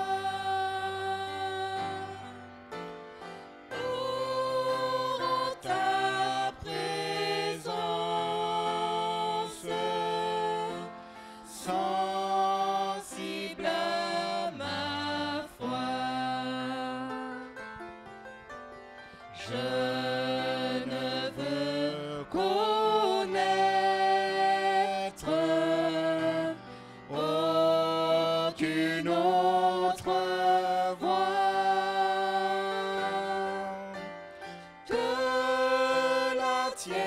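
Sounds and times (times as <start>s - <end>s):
voices singing a slow hymn: 0.0s - 17.6s, 19.3s - 37.0s.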